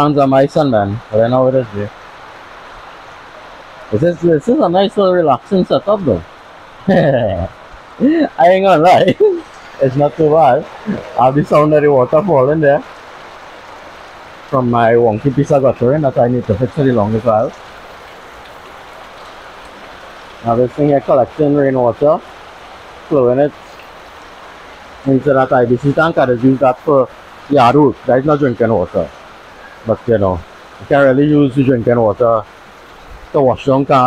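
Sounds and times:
rain falling: 0:00.0 - 0:34.0
water pouring off guttering: 0:00.0 - 0:34.0.

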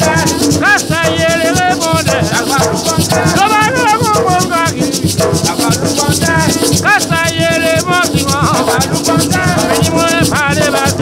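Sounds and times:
hand drums: 0:00.0 - 0:11.0
person singing: 0:00.0 - 0:11.0
shaker rattling: 0:00.0 - 0:11.0.

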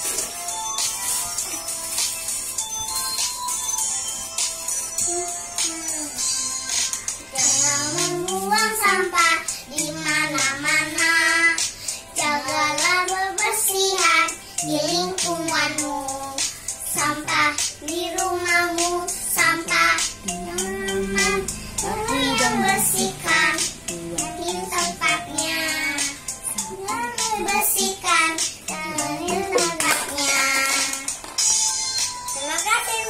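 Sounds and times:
children singing: 0:18.1 - 0:31.1.

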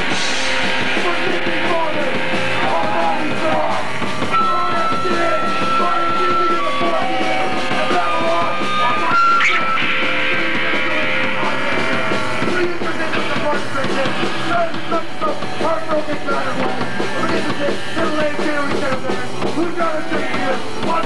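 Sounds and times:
punk rock band playing live: 0:00.0 - 0:21.0.

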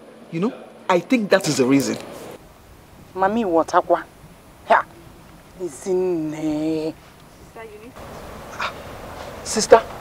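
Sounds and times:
faint background noise: 0:00.0 - 0:10.0
woman saying ah: 0:07.5 - 0:08.0.

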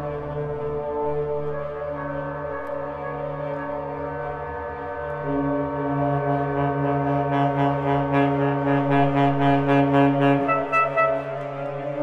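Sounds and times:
saxophone long low tones: 0:00.0 - 0:12.0.

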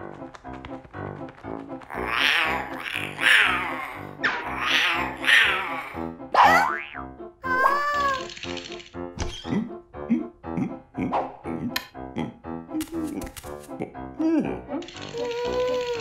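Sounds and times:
cartoon background music: 0:00.0 - 0:16.0.

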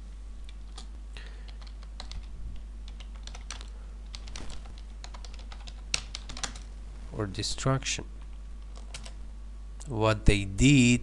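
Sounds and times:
low electrical hum: 0:00.0 - 0:11.0
keyboard typing clicks: 0:01.5 - 0:02.3, 0:02.9 - 0:06.7, 0:08.6 - 0:09.2.

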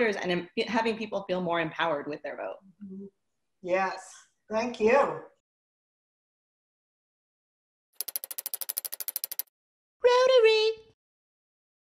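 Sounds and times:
rapid ticking clicks: 0:08.0 - 0:09.5.

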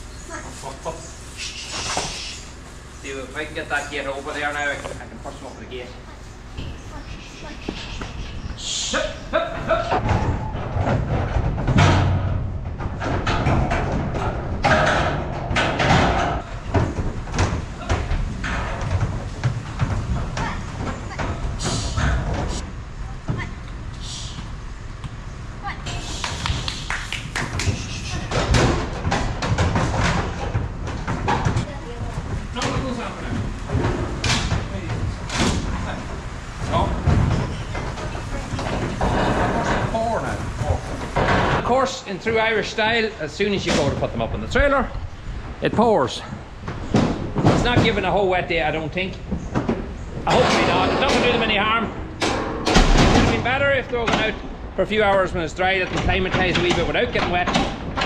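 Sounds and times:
hooves on trailer floor: 0:00.0 - 0:52.0
steel gates banging: 0:06.6 - 0:24.4, 0:32.4 - 0:58.0.

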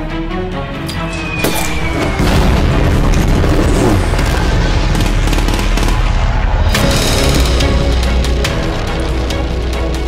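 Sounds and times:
dramatic trailer music: 0:00.0 - 0:10.0
explosion booms: 0:01.4 - 0:06.7
rapid gunfire: 0:03.5 - 0:07.1.

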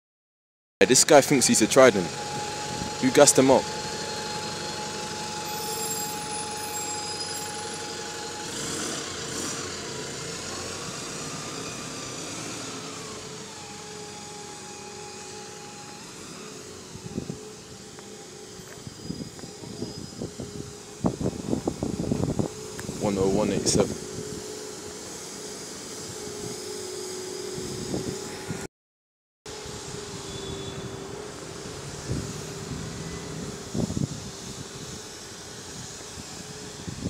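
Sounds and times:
bus drivetrain whining: 0:00.8 - 0:28.7, 0:29.5 - 0:37.0.

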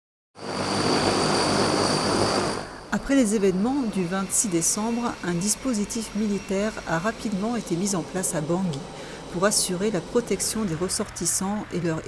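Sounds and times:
turboprop engines running: 0:00.4 - 0:12.0.

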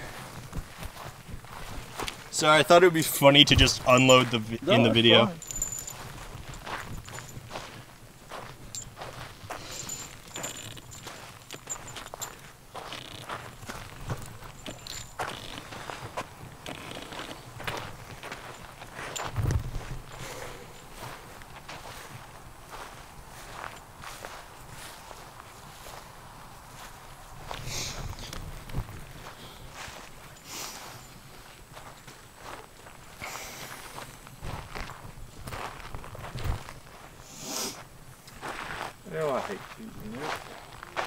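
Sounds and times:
footsteps on sandy dirt path: 0:00.0 - 0:41.0.

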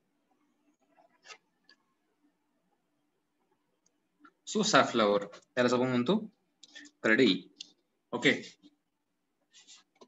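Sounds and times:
person lecturing: 0:04.4 - 0:08.7.

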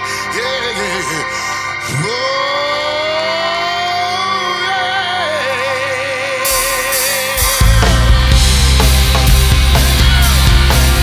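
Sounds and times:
live rock band music: 0:00.0 - 0:11.0.

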